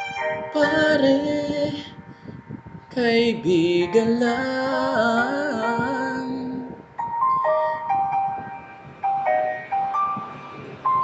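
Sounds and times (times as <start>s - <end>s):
slow pop ballad backing track: 0.0s - 8.3s.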